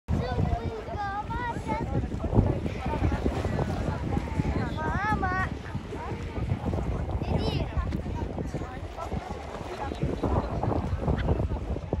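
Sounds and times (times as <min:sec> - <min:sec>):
hubbub of voices: 0:00.1 - 0:12.0
sea water sloshing: 0:00.1 - 0:12.0
wind buffeting microphone: 0:00.1 - 0:12.0.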